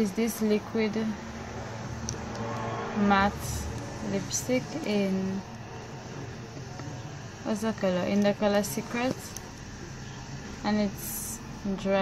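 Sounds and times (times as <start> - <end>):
low steady rumble: 0.0 - 12.0.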